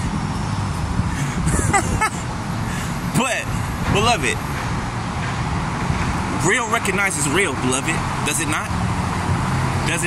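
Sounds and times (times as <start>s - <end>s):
city traffic rumble: 0.0s - 10.0s
man laughing: 1.2s - 2.3s.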